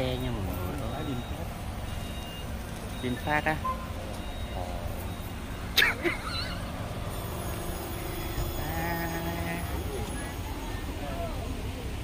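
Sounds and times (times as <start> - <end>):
car rumbling slowly: 0.0 - 12.0.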